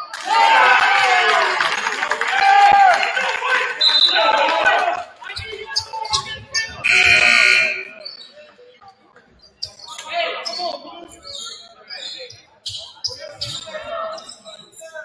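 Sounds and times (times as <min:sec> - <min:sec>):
voices echoing in a hall: 0:00.0 - 0:15.0
sneakers squeaking: 0:05.2 - 0:08.5, 0:09.2 - 0:15.0
shrill signal blast: 0:06.8 - 0:08.0.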